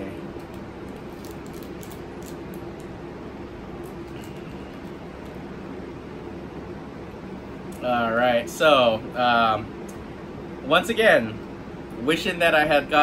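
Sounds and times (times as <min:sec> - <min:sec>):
low room hum: 0:00.0 - 0:13.0
wrapper crinkling: 0:00.9 - 0:02.5.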